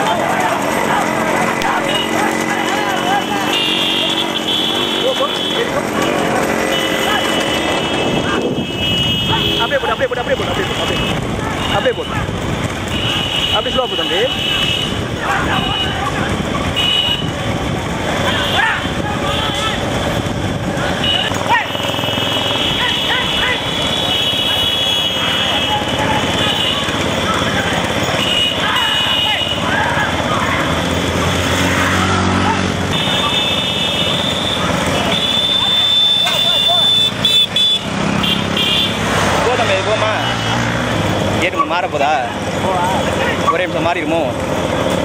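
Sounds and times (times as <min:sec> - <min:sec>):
men shouting: 0:00.0 - 0:37.2, 0:38.5 - 0:44.3
horns sounding: 0:00.0 - 0:45.0
motorcycle engines running: 0:00.0 - 0:45.0.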